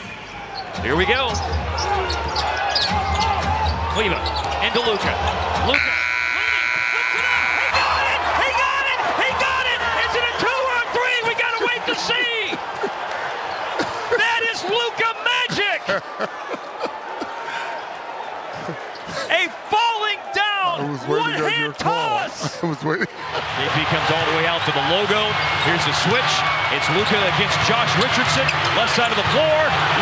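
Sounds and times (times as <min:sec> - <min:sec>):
players shouting: 0:00.2 - 0:30.0
sneakers squeaking on court: 0:00.5 - 0:05.7, 0:12.7 - 0:14.0
arena game horn: 0:05.7 - 0:08.1.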